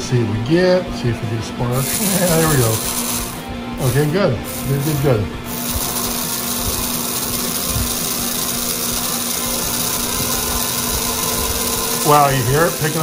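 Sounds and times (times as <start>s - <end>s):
small motor whirring: 1.8s - 13.0s.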